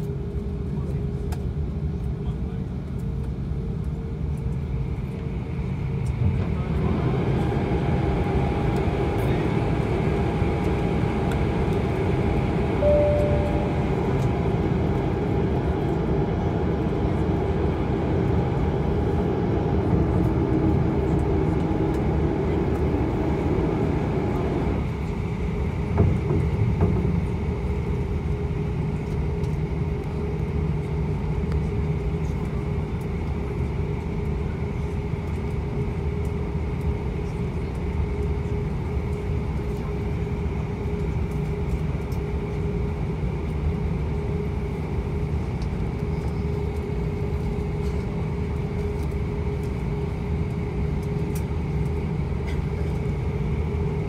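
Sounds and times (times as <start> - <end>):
airliner cabin engine rumble: 0.0 - 54.0
hum with steady whine: 12.8 - 15.6.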